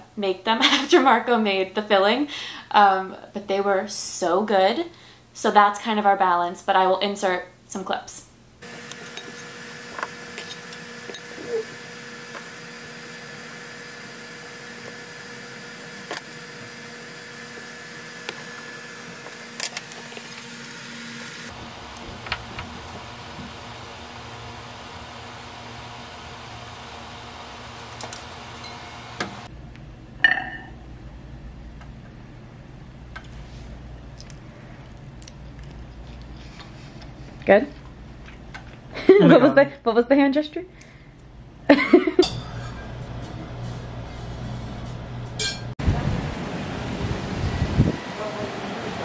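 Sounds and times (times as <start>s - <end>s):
electrical hum: 8.3s - 49.0s.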